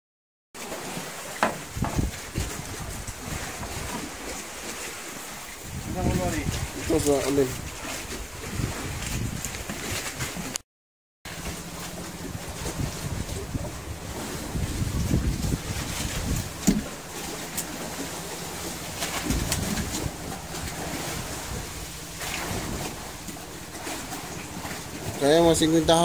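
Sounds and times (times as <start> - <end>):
sea noise: 0.6 - 10.6, 11.3 - 26.0
wind: 0.6 - 10.6, 11.3 - 26.0
knocks on deck: 1.4 - 2.1, 16.6 - 16.9
low engine hum: 11.3 - 25.2.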